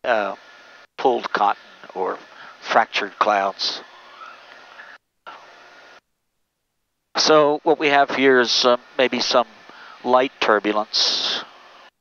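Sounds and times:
cockpit engine and airflow hiss: 0:00.0 - 0:06.0, 0:07.2 - 0:12.0.

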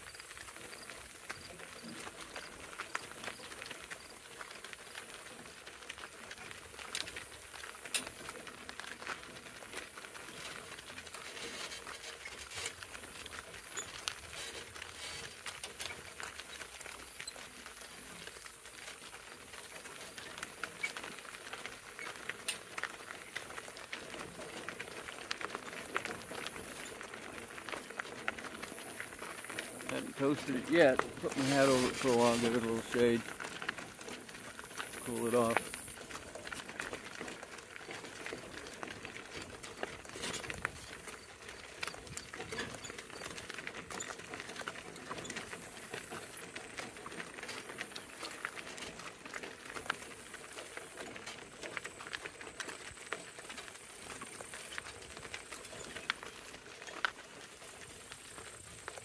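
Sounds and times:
wheels and hooves on gravel: 0:00.0 - 0:59.0.

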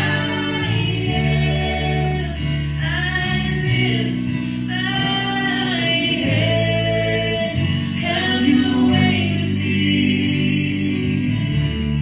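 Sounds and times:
acoustic and electric guitars: 0:00.0 - 0:12.0
group singing gospel song: 0:00.0 - 0:12.0
held bass notes: 0:00.0 - 0:12.0.

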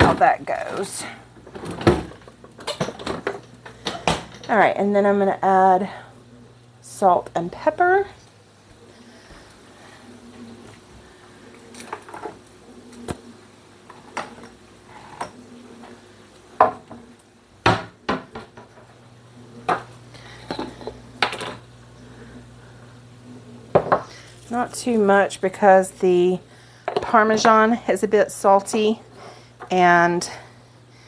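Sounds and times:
low steady hum: 0:00.0 - 0:31.0
dishes and containers clinking: 0:01.4 - 0:04.5.

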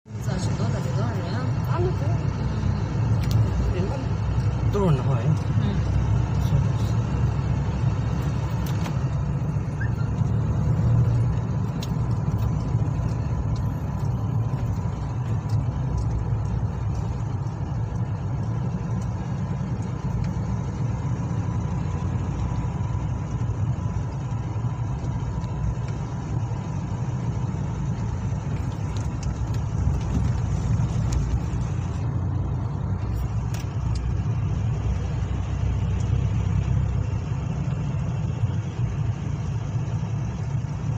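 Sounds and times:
car interior road rumble: 0:00.1 - 0:40.9.

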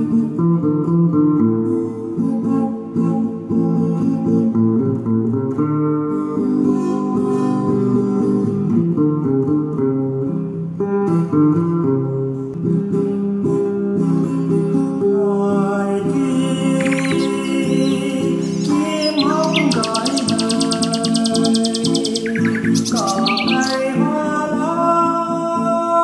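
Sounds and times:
acoustic guitar playing: 0:00.0 - 0:26.0.

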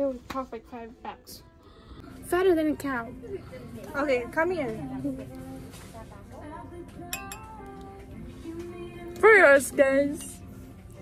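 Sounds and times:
faint background music: 0:00.0 - 0:11.0
wine glasses clinking: 0:07.1 - 0:07.6.

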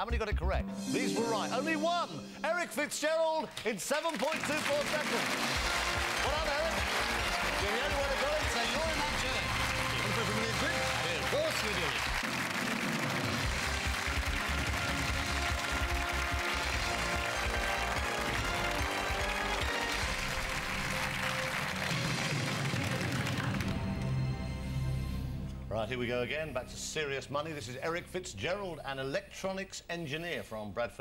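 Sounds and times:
game-show music: 0:00.0 - 0:29.1
studio audience applauding: 0:03.4 - 0:24.3.

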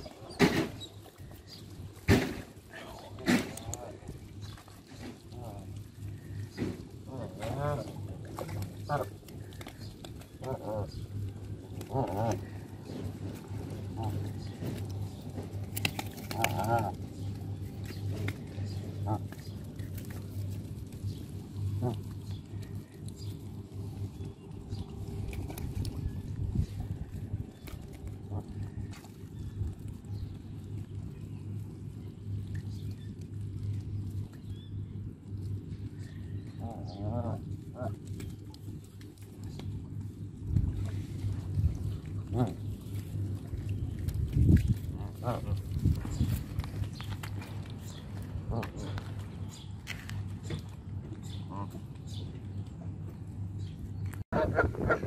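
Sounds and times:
steady low rumble: 0:00.0 - 0:55.0
geese calling: 0:02.8 - 0:29.4, 0:44.5 - 0:46.6, 0:54.4 - 0:55.0.

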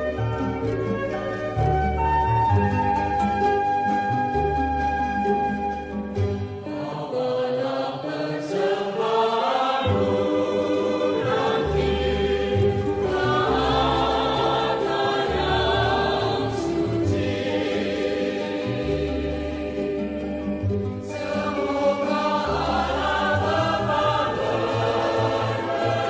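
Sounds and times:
choir singing held notes: 0:06.6 - 0:26.0.

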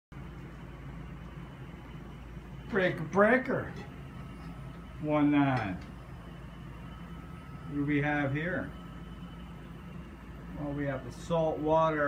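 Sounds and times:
low hum with faint hiss: 0:00.2 - 0:12.0.

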